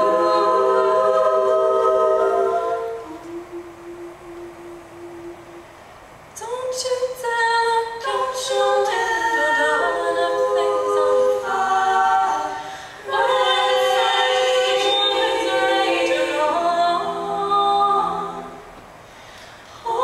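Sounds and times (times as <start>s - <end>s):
women's group singing a cappella: 0.0s - 5.6s, 6.4s - 18.8s, 19.6s - 20.0s.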